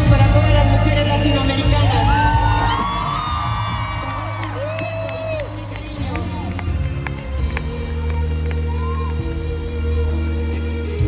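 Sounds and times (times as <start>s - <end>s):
live band with brass and keyboard: 0.0s - 3.4s
audience whooping and cheering: 1.6s - 9.8s.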